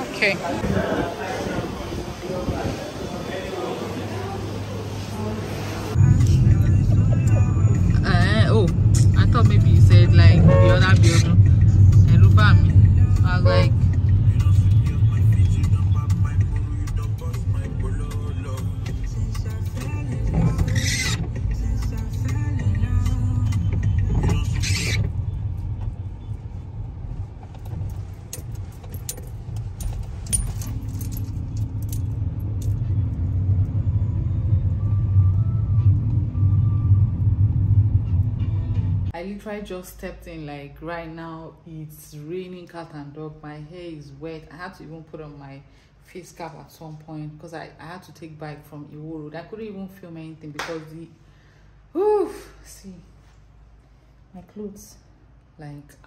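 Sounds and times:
voices: 0.0s - 13.8s
car interior rumble: 5.9s - 39.1s.

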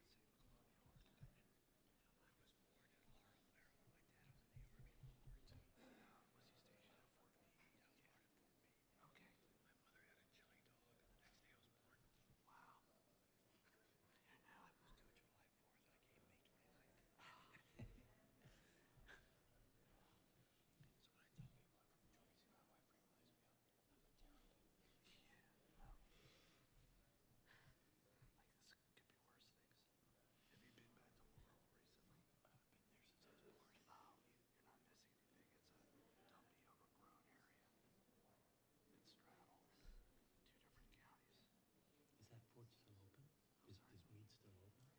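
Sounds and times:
faint low talk: 27.5s - 44.9s.

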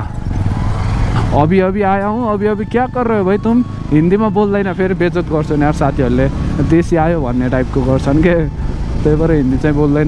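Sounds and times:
motorcycle engine rumble: 0.0s - 10.0s
man talking: 1.3s - 10.0s.

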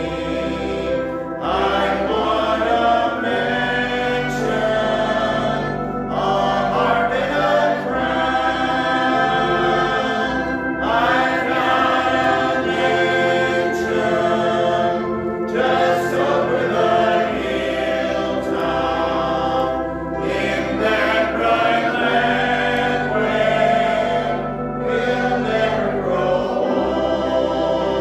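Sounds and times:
congregation singing a hymn: 0.0s - 28.0s.

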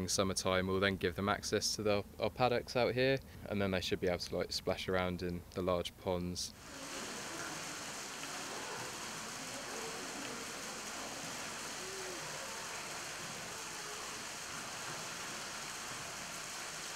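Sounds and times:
running water rushing: 6.5s - 16.9s.

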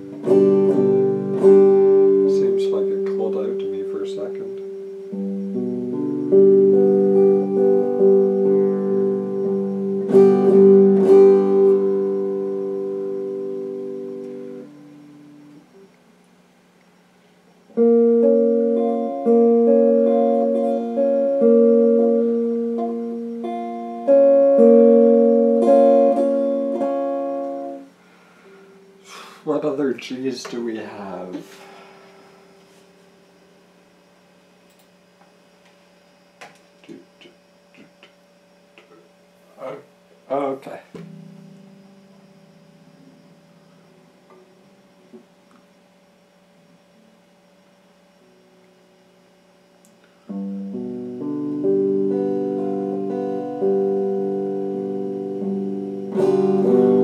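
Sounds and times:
electric guitar chords: 0.0s - 16.1s, 17.6s - 29.4s, 40.9s - 47.3s, 49.8s - 57.0s.

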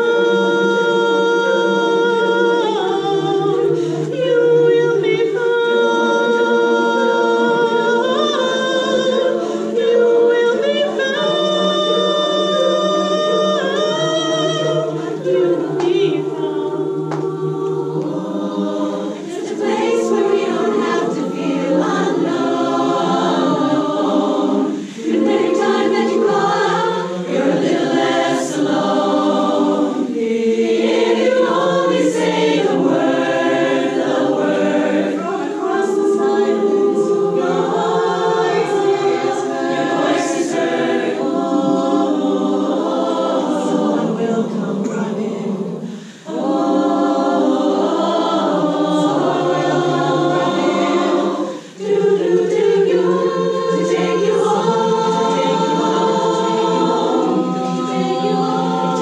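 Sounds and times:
women's chorus singing in harmony: 0.0s - 59.0s.

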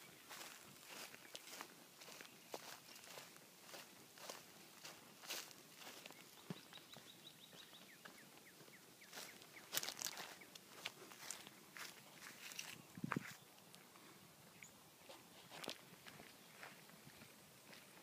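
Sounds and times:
footsteps on grass and dry leaves: 0.0s - 18.0s.

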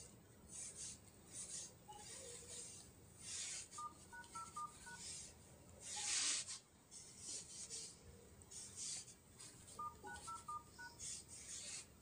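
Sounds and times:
phone keypad beeps: 3.8s - 5.1s, 9.8s - 11.0s.

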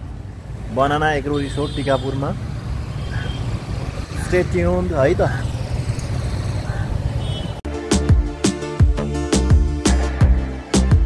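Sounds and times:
low rumble of roadside traffic: 0.0s - 7.7s.

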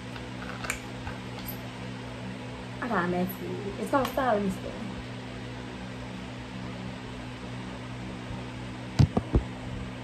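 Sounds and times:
low constant hum: 0.0s - 10.0s.

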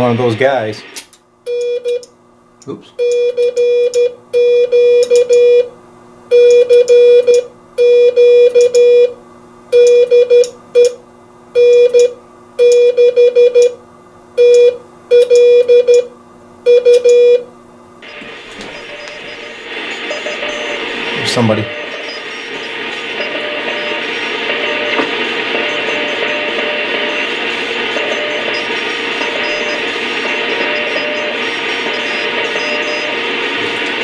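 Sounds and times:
radio receiver hiss: 0.0s - 1.1s, 18.0s - 34.0s
morse code tone: 3.0s - 5.7s, 6.3s - 9.2s, 9.8s - 10.9s, 11.6s - 13.8s, 14.4s - 16.1s, 16.7s - 17.4s, 18.0s - 34.0s.

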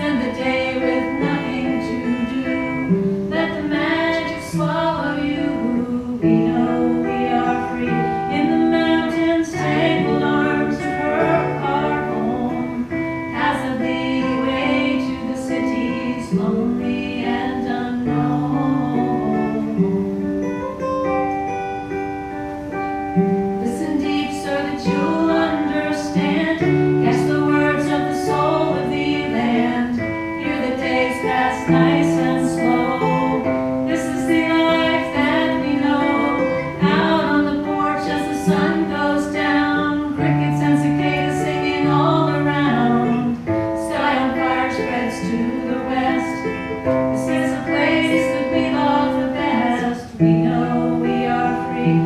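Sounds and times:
women singing folk song: 0.0s - 20.5s, 22.8s - 52.0s
acoustic guitar strumming: 0.0s - 52.0s.

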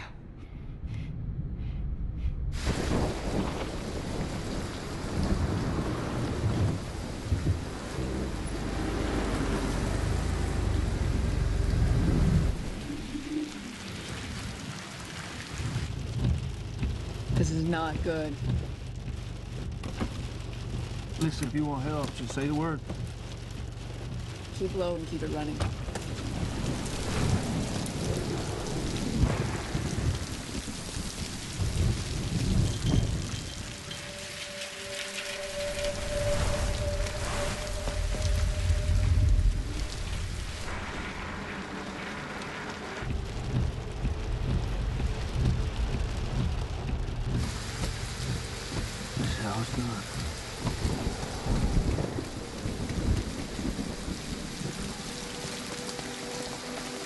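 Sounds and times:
thunder rolling: 2.5s - 19.0s, 25.2s - 57.0s
heavy rain pouring: 2.6s - 57.0s.

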